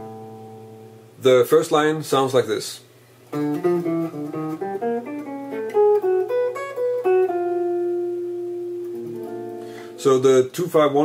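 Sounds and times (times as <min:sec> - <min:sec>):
electric jazz guitar line: 0:00.0 - 0:01.2, 0:03.3 - 0:10.5.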